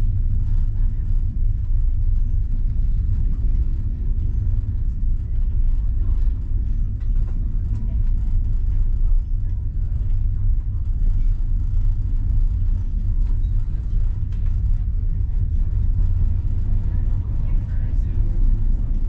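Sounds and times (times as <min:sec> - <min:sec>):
train rumble inside carriage: 0:00.0 - 0:19.0.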